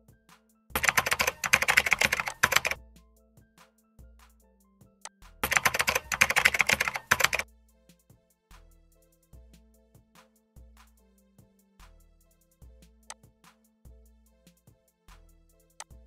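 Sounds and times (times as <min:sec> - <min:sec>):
soft background music: 0:00.0 - 0:16.0
rapid keyboard typing: 0:00.8 - 0:02.8, 0:05.4 - 0:07.4.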